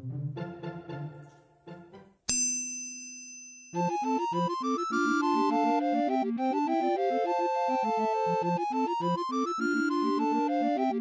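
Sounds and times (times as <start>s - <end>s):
music: 0.0s - 2.3s, 3.8s - 11.0s
bell-like ding: 2.3s - 3.9s.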